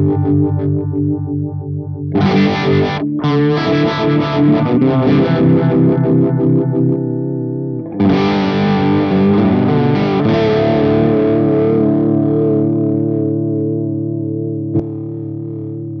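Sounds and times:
electric guitar chord with vibrato: 2.1 - 15.8.

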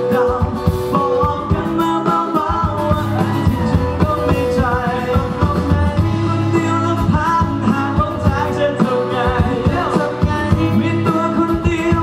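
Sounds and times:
bass guitar: 0.0 - 12.0
drums: 0.0 - 12.0
electric guitar: 0.0 - 12.0
man singing: 0.0 - 12.0.

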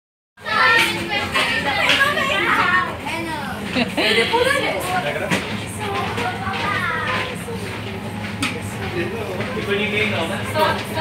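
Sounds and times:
young voices talking: 0.4 - 11.0.

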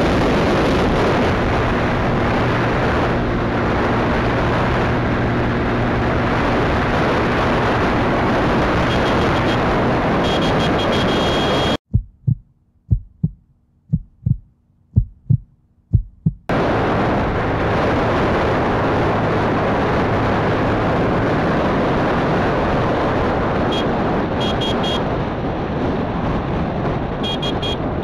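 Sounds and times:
wind rushing over microphone: 0.0 - 28.0
heartbeat thumps: 11.8 - 16.5.

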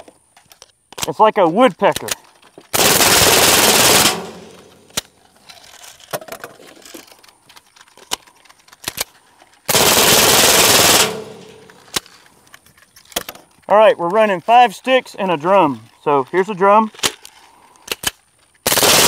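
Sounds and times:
suppressed rifle bursts: 2.0 - 5.2, 8.4 - 13.2.

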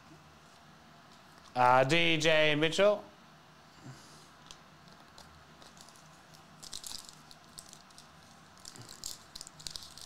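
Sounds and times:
trading cards clicking and rustling: 4.5 - 10.0.

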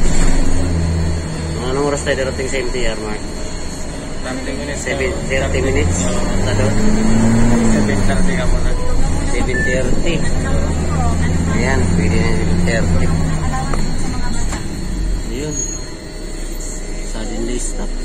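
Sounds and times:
bus engine drone: 0.0 - 18.0
people talking: 1.6 - 18.0.

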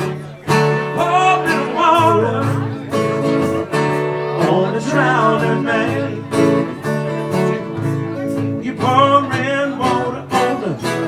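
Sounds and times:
acoustic guitars playing blues: 0.0 - 11.0.

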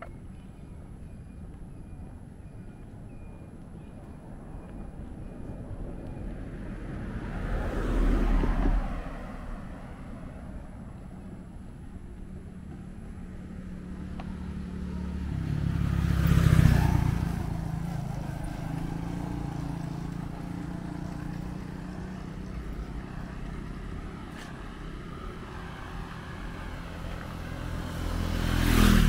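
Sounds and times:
vehicles passing by: 0.0 - 29.0.

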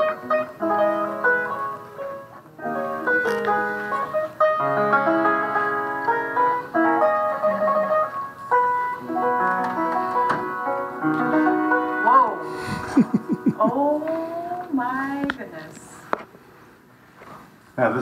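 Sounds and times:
piano running passage: 0.0 - 14.5.

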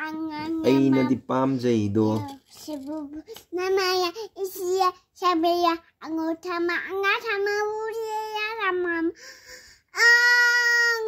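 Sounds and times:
toddler singing: 0.0 - 1.2, 10.0 - 11.0.

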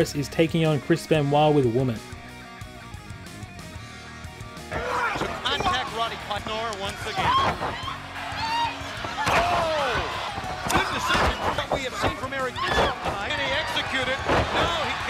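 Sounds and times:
announcers commentating: 4.6 - 15.0
arena crowd: 4.6 - 15.0
bodies thudding on ring mat: 9.0 - 15.0.

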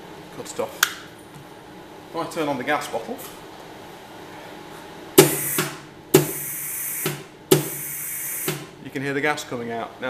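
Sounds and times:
gas hissing from nozzle: 5.2 - 8.6.

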